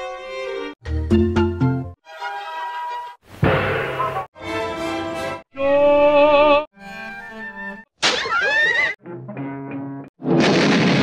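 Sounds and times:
orchestral cartoon music: 0:00.0 - 0:03.2, 0:04.0 - 0:07.9, 0:09.0 - 0:10.1.

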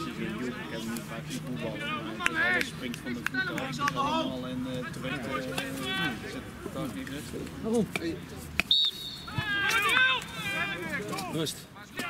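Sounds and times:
voices calling out: 0:00.0 - 0:12.0
referee's whistle blast: 0:08.7 - 0:09.5.

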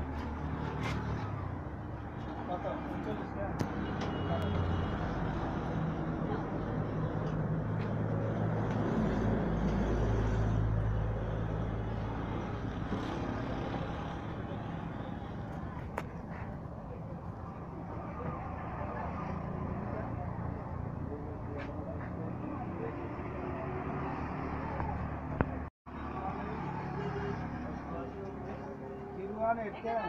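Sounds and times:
vehicle engine rumble: 0:00.0 - 0:29.2.

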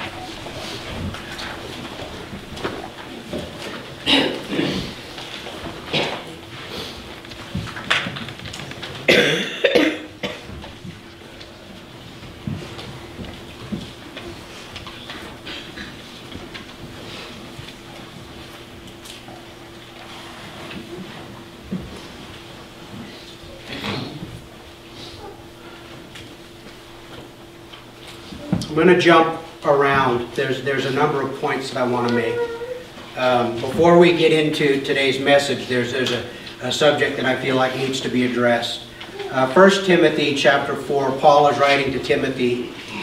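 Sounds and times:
faint hum: 0:00.0 - 0:43.0
person coughing: 0:04.1 - 0:05.0, 0:05.9 - 0:06.3, 0:09.1 - 0:10.5.

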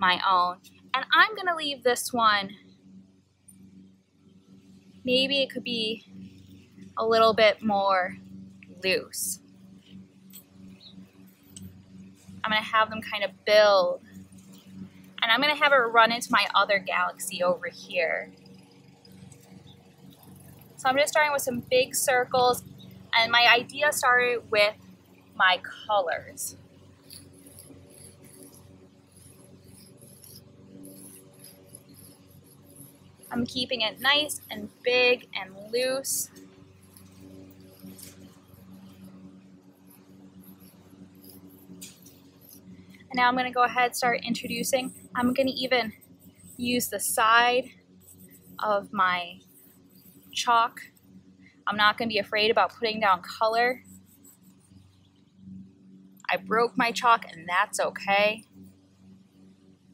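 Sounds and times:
low steady hum: 0:00.0 - 0:59.9
chalk scraping on asphalt: 0:20.1 - 0:51.1, 0:51.7 - 0:55.0.

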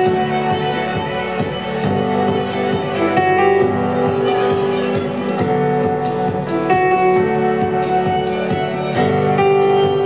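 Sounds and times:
bowed violin: 0:00.0 - 0:10.0
piano accompaniment: 0:00.0 - 0:10.0.

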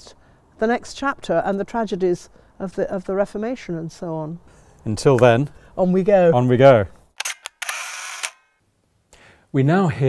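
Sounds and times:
sharp clicks: 0:07.2 - 0:08.5.

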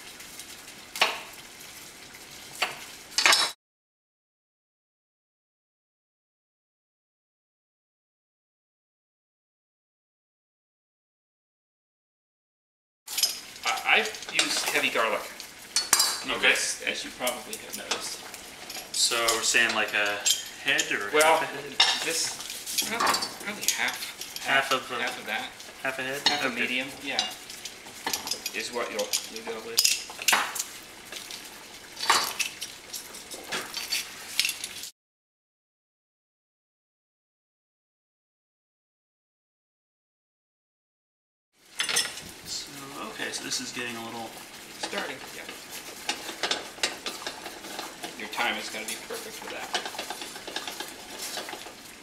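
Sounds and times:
whisk scraping a metal saucepan: 0:13.1 - 0:30.3, 0:44.8 - 0:52.0.

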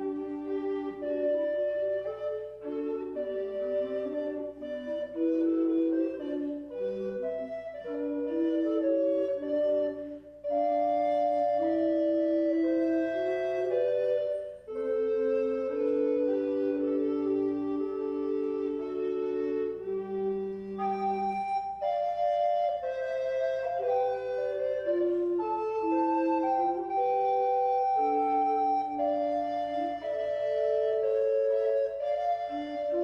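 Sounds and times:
recorders playing slow piece: 0:00.0 - 0:33.0.

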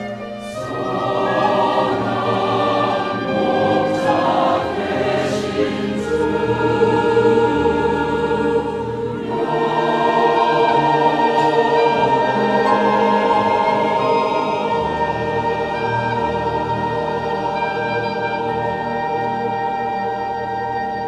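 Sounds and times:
choir singing a hymn: 0:00.0 - 0:20.9
flute: 0:00.0 - 0:21.0
violin: 0:00.0 - 0:21.0.

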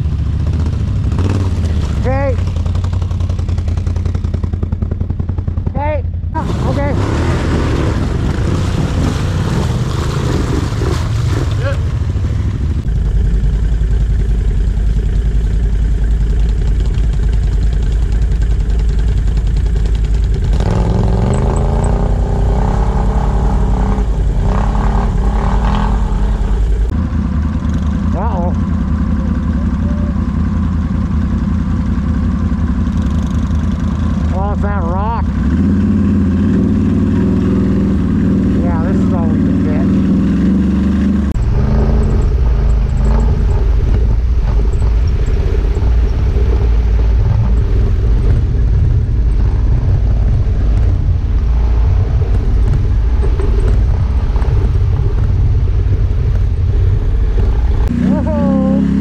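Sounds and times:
atv engines revving: 0:00.0 - 0:59.0.

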